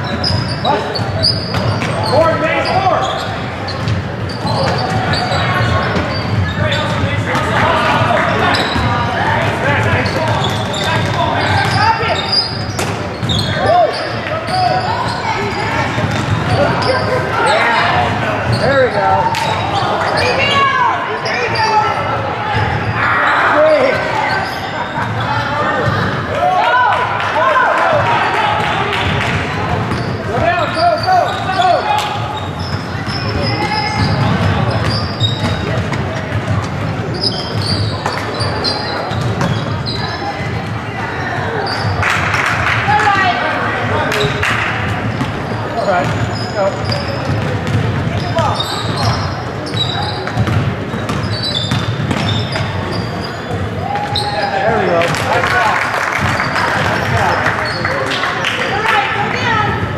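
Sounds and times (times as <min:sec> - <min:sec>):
basketball bouncing on hardwood floor: 0:50.2 - 0:52.7.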